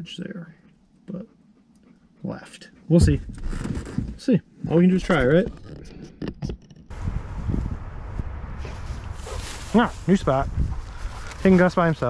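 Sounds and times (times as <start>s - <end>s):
footsteps through dry grass: 6.9s - 12.0s
wind rumble on microphone: 6.9s - 12.0s.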